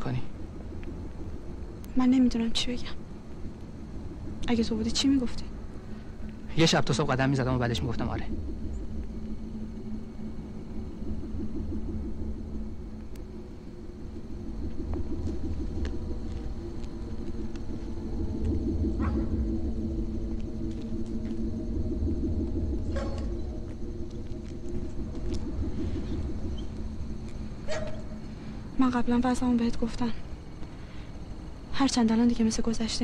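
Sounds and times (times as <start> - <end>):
traffic rumble: 0.0 - 33.0.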